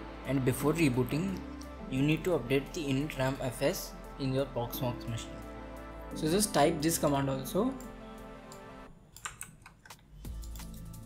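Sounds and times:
electronic music with steady beat: 0:00.0 - 0:08.9, 0:09.9 - 0:11.0
keyboard keys clicking: 0:09.2 - 0:10.9.

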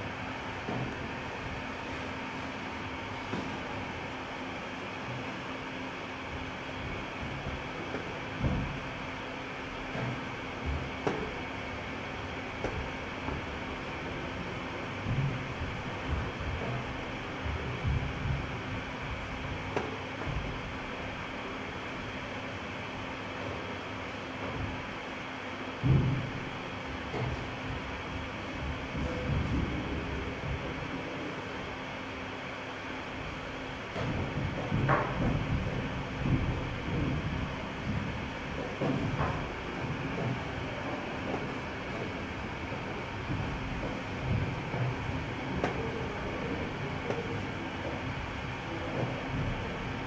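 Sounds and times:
low background rumble: 0:00.0 - 0:25.0
faint hum: 0:00.0 - 0:50.0
low thumps: 0:06.8 - 0:09.0, 0:09.8 - 0:21.4, 0:25.8 - 0:30.7.

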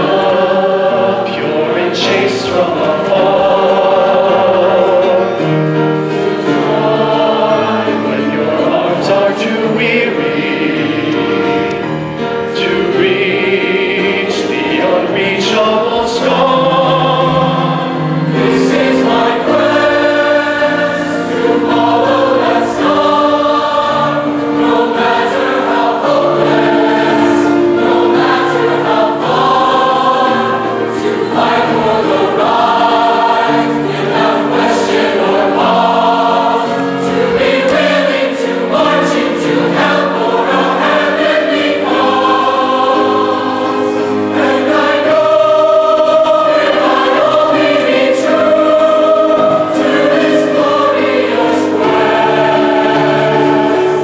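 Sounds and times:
choir singing in harmony: 0:00.0 - 0:54.0.

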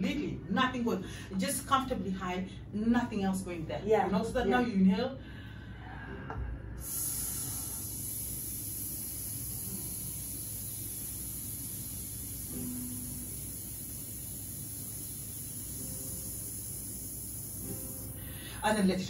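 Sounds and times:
person exhaling hissed sss: 0:05.8 - 0:18.6.

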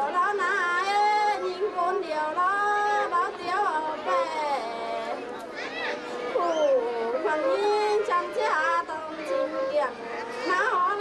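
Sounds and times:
woman singing a folk song: 0:00.0 - 0:05.3, 0:06.2 - 0:11.0.

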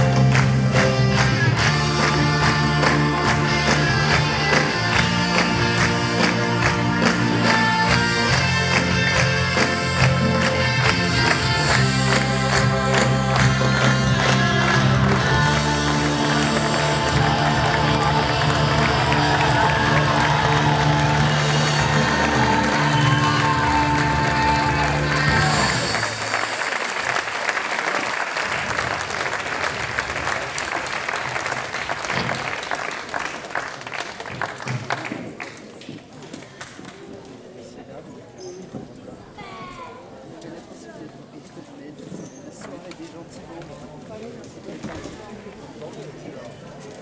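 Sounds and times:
audience applause: 0:00.0 - 0:35.8.

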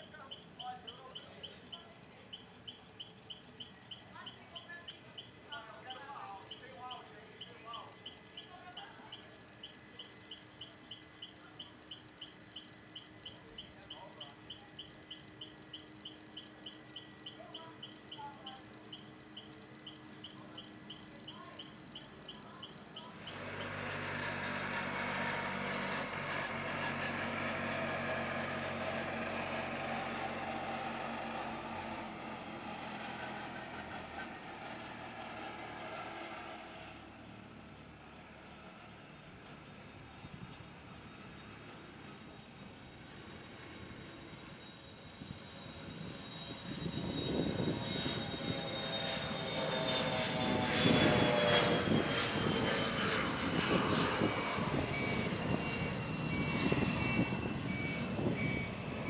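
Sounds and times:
jet engines whining: 0:18.6 - 0:59.0.

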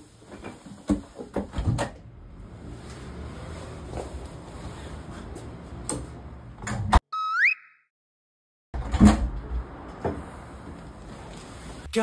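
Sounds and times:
electronic sound effect rising: 0:07.1 - 0:07.9
door opening and shutting: 0:08.8 - 0:09.5.

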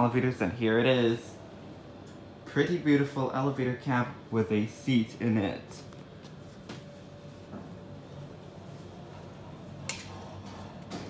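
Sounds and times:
elevator hum: 0:00.0 - 0:11.0.

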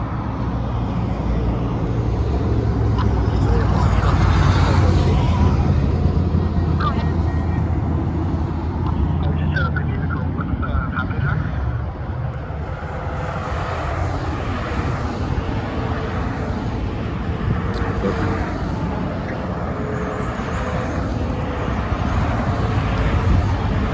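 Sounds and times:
highway traffic passing at speed: 0:00.0 - 0:23.9.

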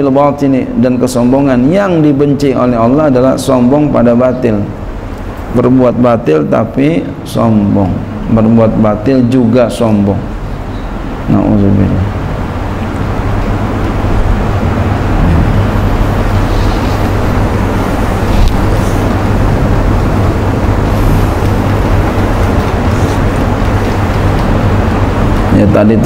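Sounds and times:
rumbling background noise: 0:00.0 - 0:26.0
low hum: 0:10.1 - 0:26.0.

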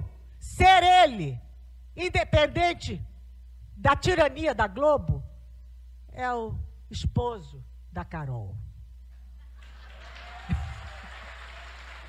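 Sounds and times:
audience applause: 0:09.6 - 0:12.0.

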